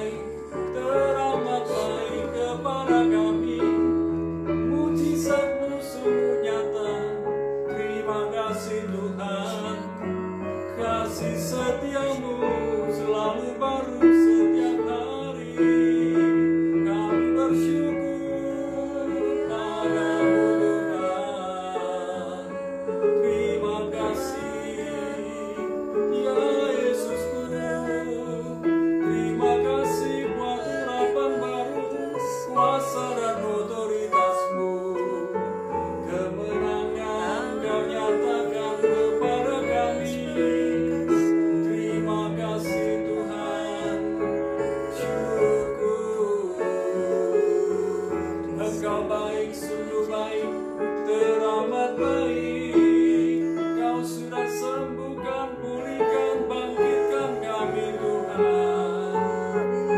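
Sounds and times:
man singing worship song: 0.0s - 59.9s
piano chords: 0.0s - 59.9s.

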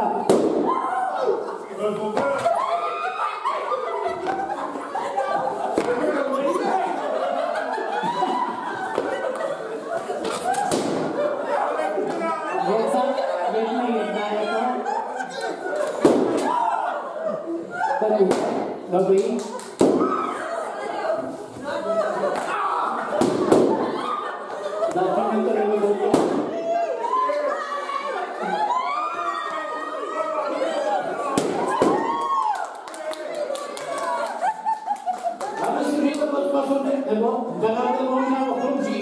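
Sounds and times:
crowd chatter: 0.0s - 39.0s
people talking in a hall: 0.0s - 39.0s
balloon bursting: 0.2s - 0.8s, 10.2s - 11.2s, 16.0s - 16.6s, 23.2s - 24.0s, 26.1s - 26.6s, 31.3s - 32.2s
crowd laughter: 1.1s - 18.3s, 19.3s - 32.2s, 32.9s - 36.7s.

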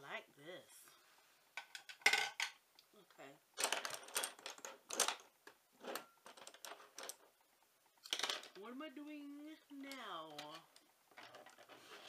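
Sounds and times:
plastic makeup items clattering: 1.6s - 2.6s, 3.6s - 7.3s, 8.0s - 8.6s, 9.8s - 12.0s.

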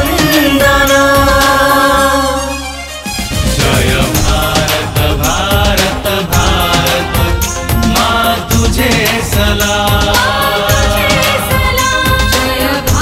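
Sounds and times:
men singing: 0.0s - 2.5s, 3.4s - 13.0s
instrumental backing with steady beat: 0.0s - 13.0s.

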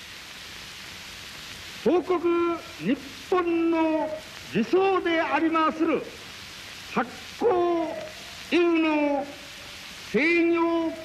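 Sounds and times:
recording hiss: 0.0s - 11.0s
man declaiming a speech: 6.9s - 9.4s, 10.1s - 11.0s.

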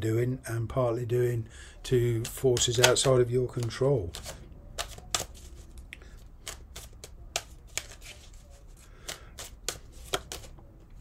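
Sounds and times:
cards being shuffled: 2.2s - 11.0s.

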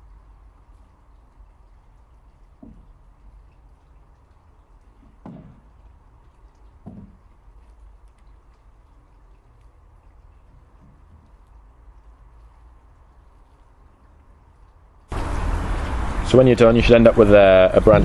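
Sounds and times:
low steady rumble: 0.0s - 18.0s
soft dull knocks: 2.2s - 8.0s.

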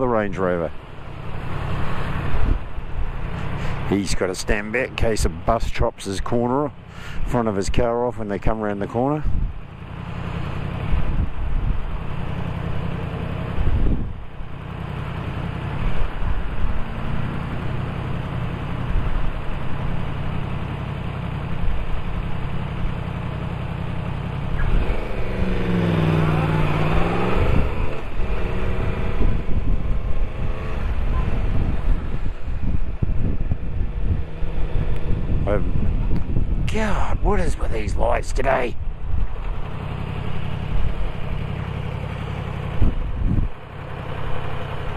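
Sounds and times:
traffic: 0.0s - 44.9s
motorcycle engine: 8.7s - 36.8s, 38.6s - 44.9s.

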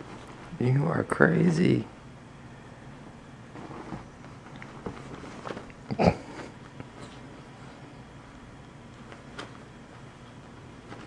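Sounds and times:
bed sheets rustling: 0.0s - 1.7s, 3.1s - 11.0s.

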